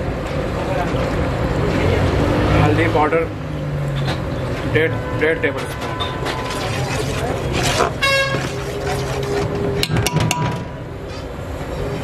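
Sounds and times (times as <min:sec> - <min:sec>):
ladle stirring in metal pot: 0:05.9 - 0:10.8.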